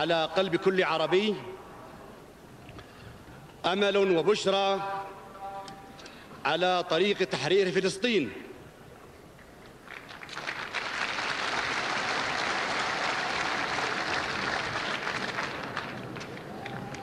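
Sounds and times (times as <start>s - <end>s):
audience applauding: 9.8s - 17.0s.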